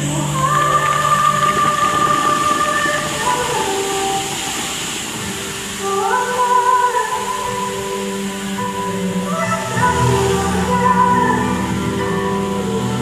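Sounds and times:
fountain water jets rushing: 0.0 - 13.0
music with long notes: 0.0 - 13.0.

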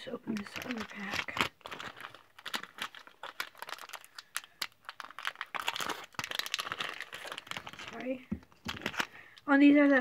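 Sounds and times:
foil wrapper tearing and crinkling: 0.0 - 9.3.

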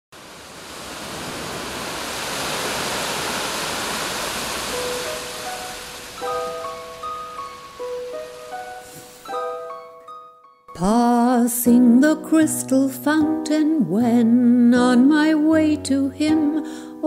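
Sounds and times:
rushing surf-like water: 0.1 - 9.5.

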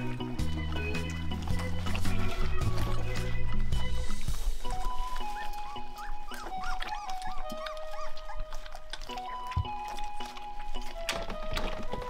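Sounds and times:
background music with held notes: 0.0 - 12.0
puppies whimpering: 0.0 - 12.0.

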